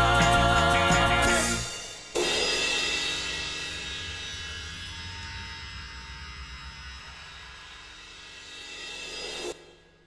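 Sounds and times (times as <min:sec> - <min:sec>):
cymbal crash: 0:01.2 - 0:10.0.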